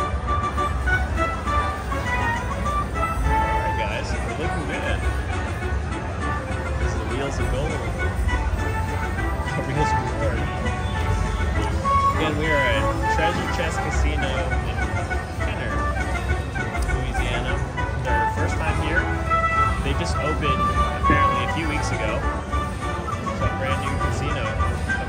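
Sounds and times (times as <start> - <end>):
casino hum: 0.0 - 25.0
crowd chatter: 0.0 - 25.0
slot machine win music: 0.0 - 25.0.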